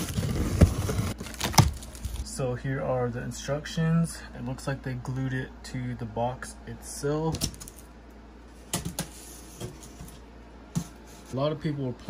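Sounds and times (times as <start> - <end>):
cardboard flaps scraping and rustling: 0.0 - 2.3.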